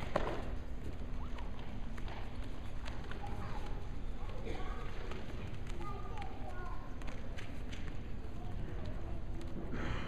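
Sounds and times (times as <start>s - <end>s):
low gym room rumble: 0.0s - 10.0s.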